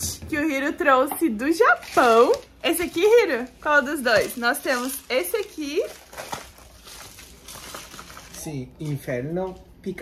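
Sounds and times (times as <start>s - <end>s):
plastic packaging crinkling: 1.6s - 10.0s.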